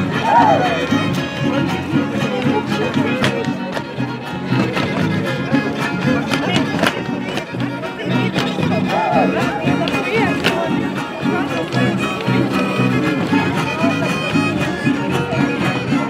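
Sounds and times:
background voices: 0.0s - 16.0s
strummed small guitar: 0.0s - 16.0s
violin folk dance tune: 0.0s - 16.0s.

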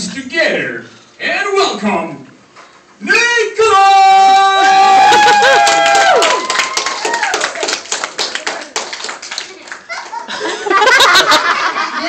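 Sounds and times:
long held shouting voices: 3.6s - 7.4s
children clapping: 5.2s - 10.4s.

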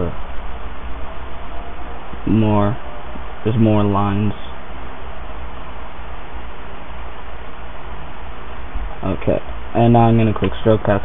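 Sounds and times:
low hum: 0.0s - 11.0s
steady background hiss: 0.0s - 11.0s.

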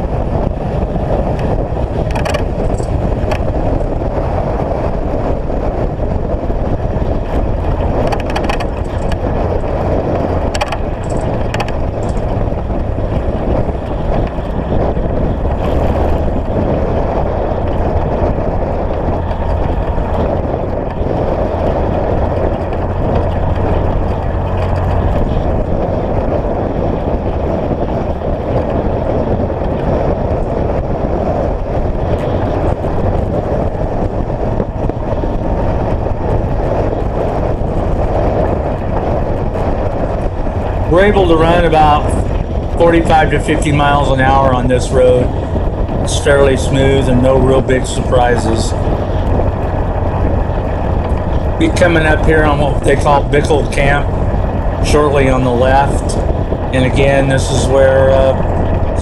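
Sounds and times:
tyre and road noise: 0.0s - 59.0s
vehicle engine running steadily: 0.0s - 59.0s.

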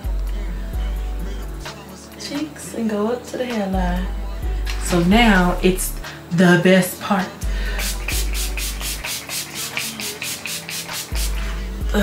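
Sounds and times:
spray bottle spritzing: 7.8s - 11.6s.

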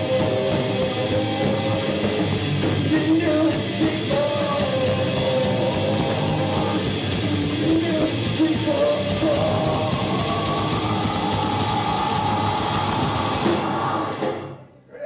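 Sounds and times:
electric guitar: 0.0s - 14.6s
bass guitar: 0.0s - 14.7s
drum kit: 0.0s - 14.7s.

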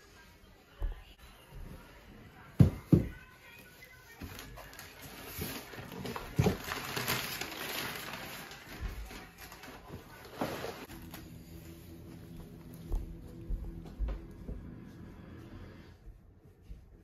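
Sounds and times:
cardboard and paper rustling: 2.6s - 11.9s.

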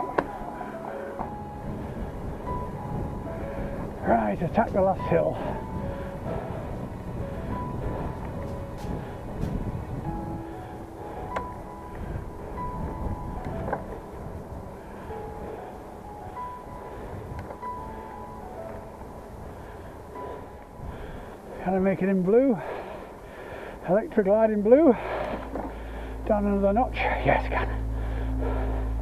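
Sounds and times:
bicycle tyre noise: 0.0s - 24.3s
wind rumbling on microphone: 0.0s - 29.0s.

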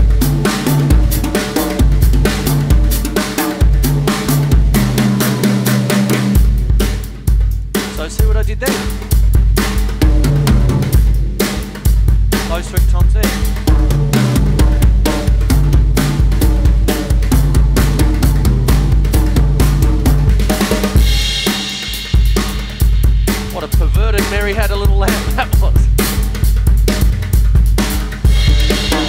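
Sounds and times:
drum kit rock beat: 0.0s - 29.0s.

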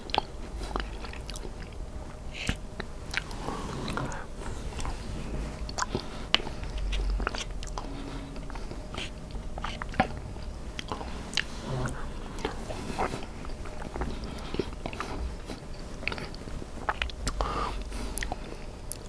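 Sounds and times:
chewing with wet mouth sounds: 0.0s - 19.0s.

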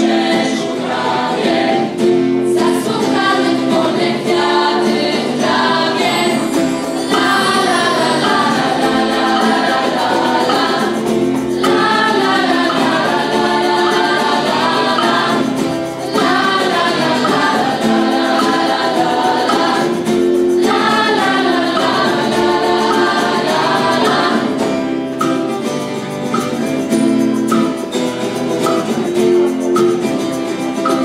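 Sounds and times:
youth choir singing: 0.0s - 25.5s
acoustic guitar: 0.0s - 31.0s.

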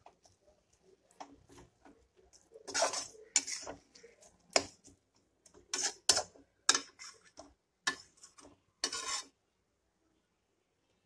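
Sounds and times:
metal spatula scraping a pan: 1.2s - 9.4s.

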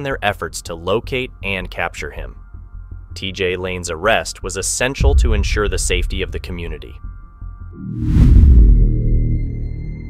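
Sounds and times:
deep boom with whoosh: 5.0s - 9.2s
sustained low drone: 5.0s - 10.0s.

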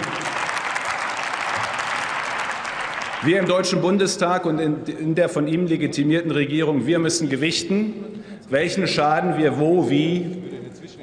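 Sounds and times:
crowd applauding: 0.0s - 3.8s.

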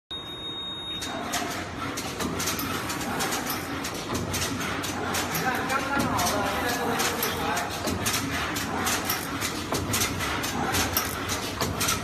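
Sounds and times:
printing machine clattering: 0.8s - 12.0s.

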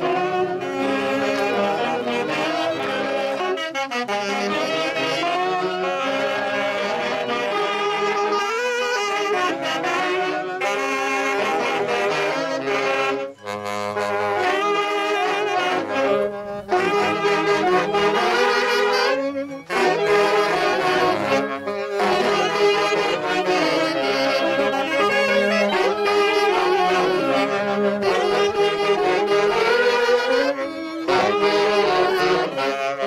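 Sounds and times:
saxophones and clarinets playing: 0.0s - 33.0s.

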